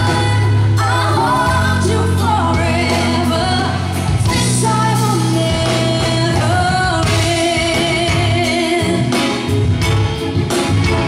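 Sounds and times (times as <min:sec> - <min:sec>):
woman singing with pop band: 0:00.0 - 0:09.7
sustained bass: 0:00.0 - 0:11.0.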